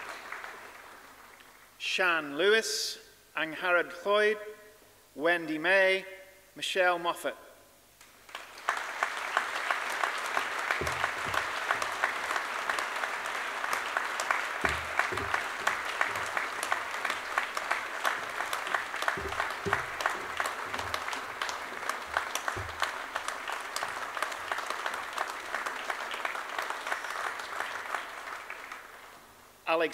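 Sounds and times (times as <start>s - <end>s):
audience applauding: 0.0s - 1.6s, 8.2s - 29.2s
dull low thuds: 10.8s - 12.1s, 14.6s - 23.3s.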